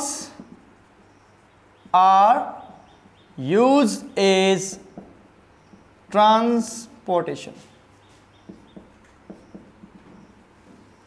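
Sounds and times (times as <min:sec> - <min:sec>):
marker strokes on whiteboard: 0:07.4 - 0:11.0
marker squeaks: 0:07.6 - 0:11.0.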